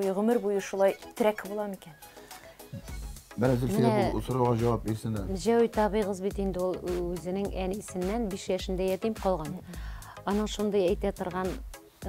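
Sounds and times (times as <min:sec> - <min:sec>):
background music: 0:00.0 - 0:12.0
person speaking: 0:02.8 - 0:05.8.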